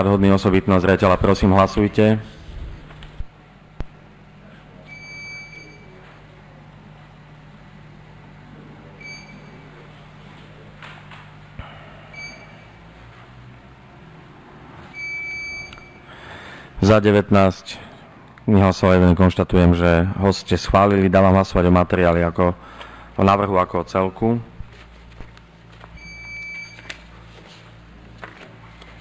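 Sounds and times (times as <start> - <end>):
low room hum: 0.0 - 29.0
electronic beeps: 9.0 - 9.7, 12.1 - 12.8, 14.9 - 16.1.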